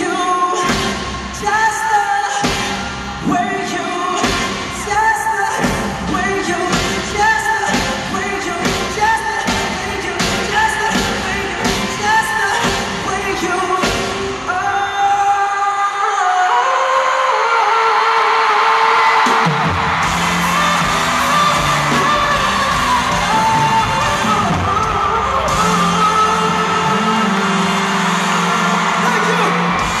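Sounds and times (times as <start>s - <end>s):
live pop band with horns: 0.0s - 30.0s
audience whooping and yelling: 14.3s - 30.0s.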